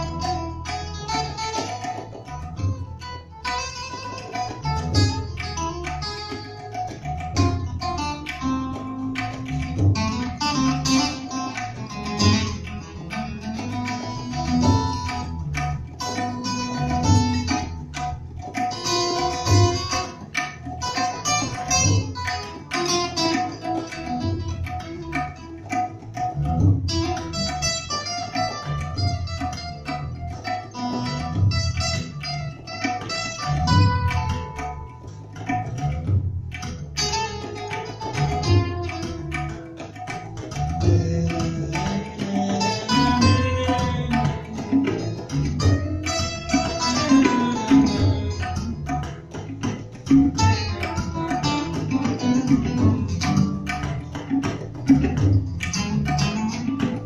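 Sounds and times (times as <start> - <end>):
electric bass guitar: 0.0 - 57.0
plucked acoustic guitar: 0.0 - 57.0
tabla drumming: 0.0 - 57.0.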